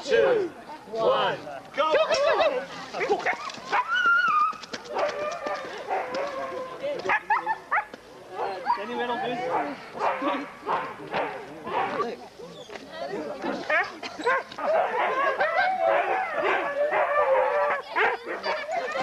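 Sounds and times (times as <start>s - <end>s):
people talking: 0.0s - 4.1s, 4.9s - 19.0s
dogs barking and yipping: 3.0s - 12.8s, 13.6s - 19.0s.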